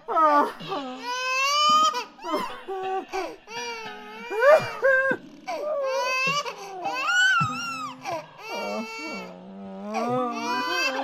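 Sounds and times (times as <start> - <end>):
high-pitched voice wailing: 4.3 - 11.0.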